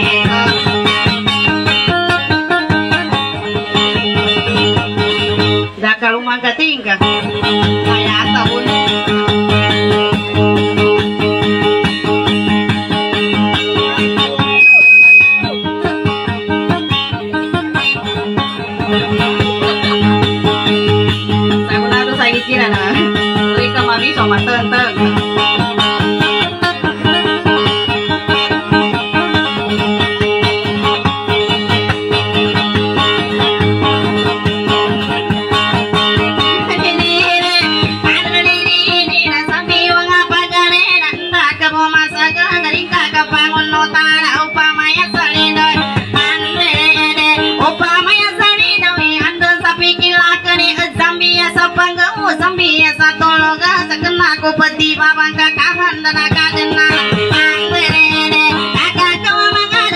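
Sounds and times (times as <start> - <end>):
guitar plucking over drone: 0.0 - 59.9
short high-pitched tone: 14.3 - 15.9.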